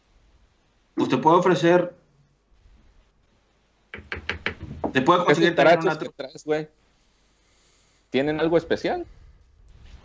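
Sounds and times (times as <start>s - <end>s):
rapid sharp knocks: 3.9s - 5.1s.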